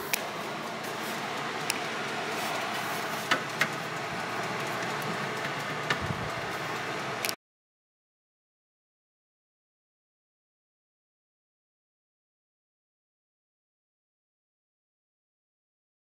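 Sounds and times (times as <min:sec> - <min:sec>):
hair dryer blower running: 0:00.0 - 0:07.4.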